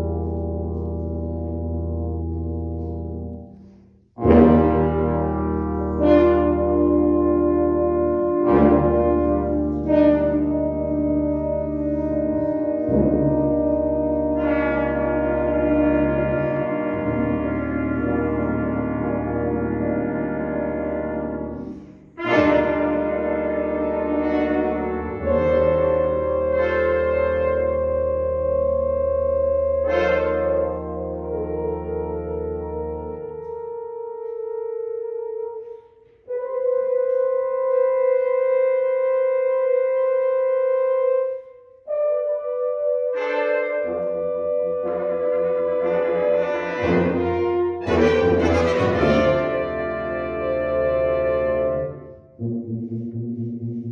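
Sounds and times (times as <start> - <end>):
brass ensemble sustained chord: 0.0 - 53.9.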